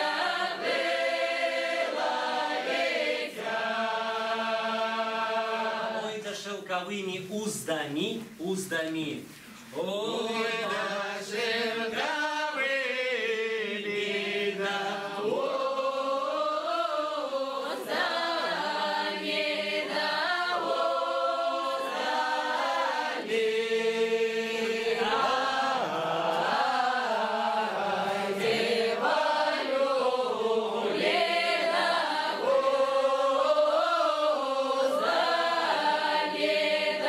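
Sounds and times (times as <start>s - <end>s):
group singing unaccompanied: 0.0s - 6.4s, 9.8s - 37.0s.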